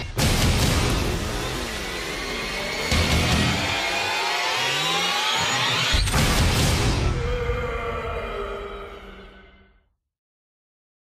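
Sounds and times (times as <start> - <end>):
rising tones: 0.9 - 9.5.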